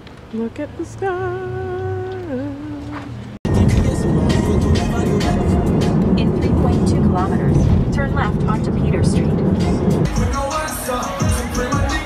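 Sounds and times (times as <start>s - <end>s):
road and engine rumble: 0.0s - 12.0s
music playing: 3.5s - 12.0s
voices: 6.1s - 9.8s.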